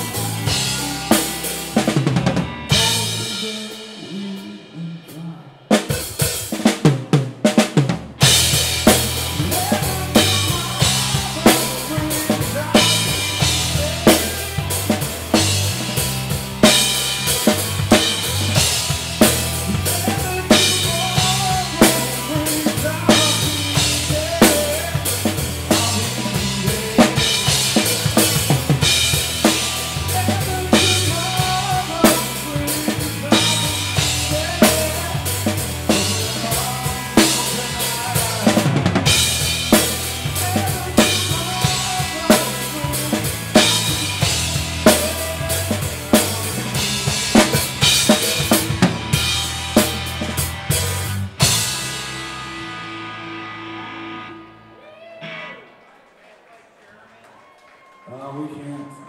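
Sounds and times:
rock band playing: 0.0s - 55.8s
drum kit kick and snare: 5.7s - 52.1s.

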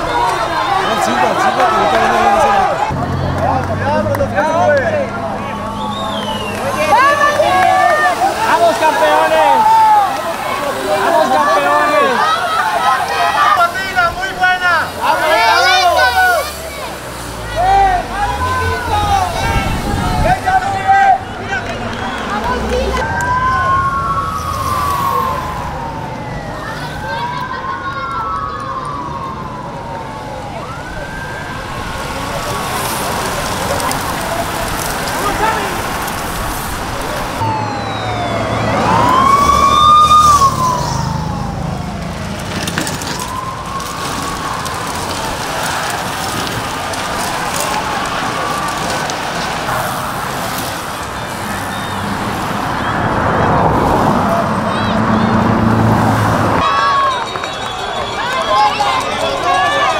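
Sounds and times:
street noise: 0.0s - 59.9s
siren wailing: 17.6s - 59.9s.

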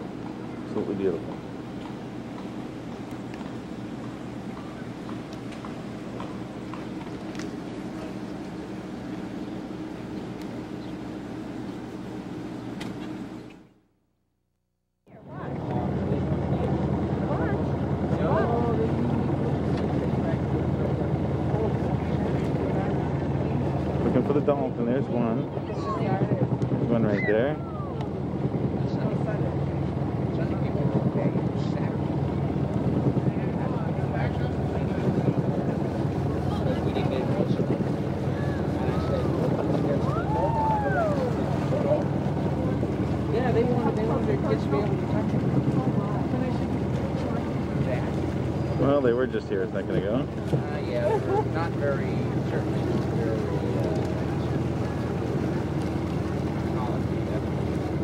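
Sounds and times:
boat engine droning: 0.0s - 14.1s, 15.0s - 58.0s.

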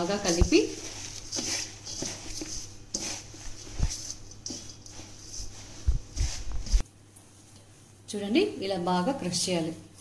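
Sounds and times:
leaves rustling and crunching by hand: 0.0s - 6.8s.

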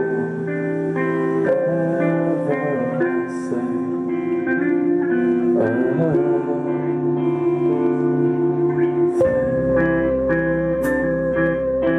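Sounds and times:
bass guitar: 0.0s - 11.9s
electric guitars ringing chords: 0.0s - 11.9s.

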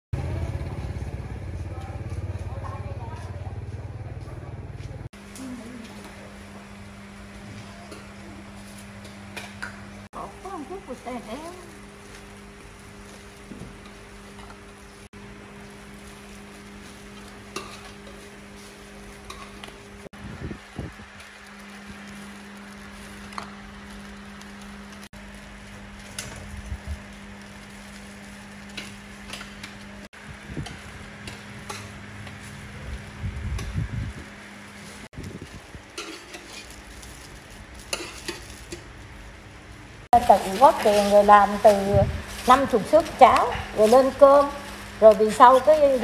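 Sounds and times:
motorbike engine idling: 0.2s - 5.8s.

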